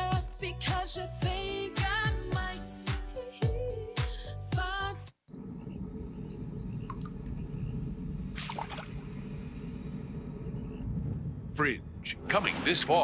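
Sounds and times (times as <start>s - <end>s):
low rumbling drone: 5.3s - 13.0s.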